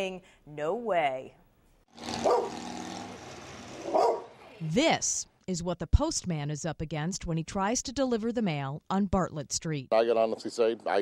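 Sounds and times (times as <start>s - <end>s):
dog barking: 2.2s - 2.6s, 3.8s - 4.3s.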